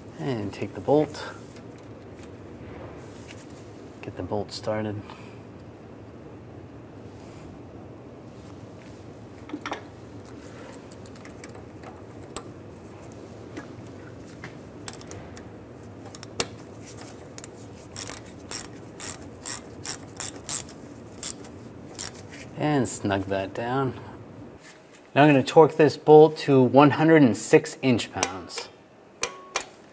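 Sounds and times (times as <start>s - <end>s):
hand ratchet clicking: 17.4s - 22.2s.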